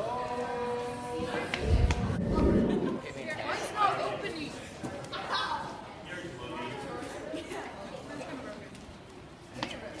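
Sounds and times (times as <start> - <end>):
people chattering: 0.0 - 10.0
low rumble: 1.6 - 3.3.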